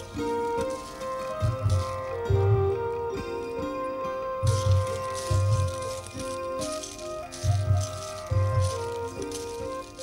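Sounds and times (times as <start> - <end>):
held melodic notes: 0.0 - 10.0
low drum beat: 1.3 - 2.8.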